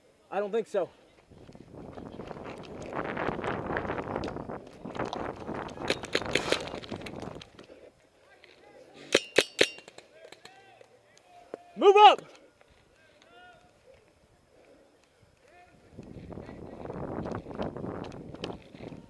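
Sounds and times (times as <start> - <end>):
running footsteps and rustling gear: 0.9 - 9.0, 12.2 - 19.0
distant shouting: 10.1 - 15.9.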